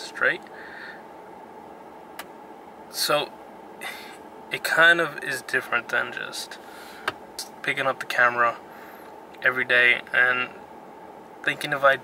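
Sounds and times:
low car cabin hum: 0:00.0 - 0:12.0.

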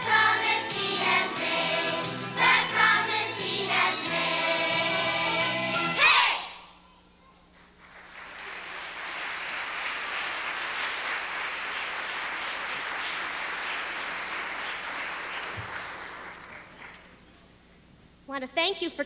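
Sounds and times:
audience applauding: 0:07.5 - 0:17.2.

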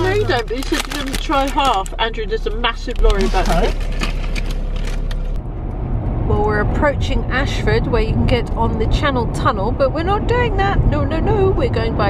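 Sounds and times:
car cabin hum: 0:00.0 - 0:12.0
tyre and engine rumble: 0:00.0 - 0:12.0.

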